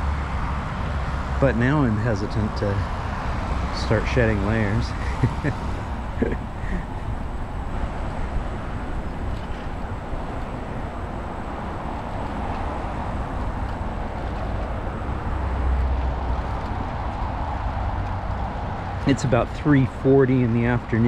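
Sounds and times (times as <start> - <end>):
motorway traffic: 0.0 - 21.0
bicycle riding on asphalt: 2.8 - 20.9.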